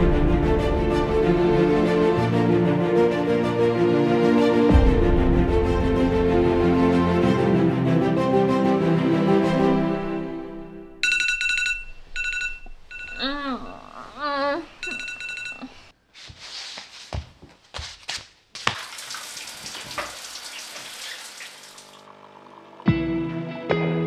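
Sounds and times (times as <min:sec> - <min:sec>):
phone alarm ringtone beeping: 0:11.0 - 0:13.4, 0:14.8 - 0:15.9
water running from tap: 0:18.7 - 0:22.1.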